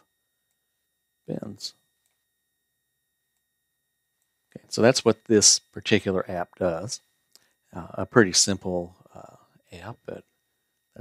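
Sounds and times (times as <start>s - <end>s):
faint high-pitched tone: 0.0s - 11.0s.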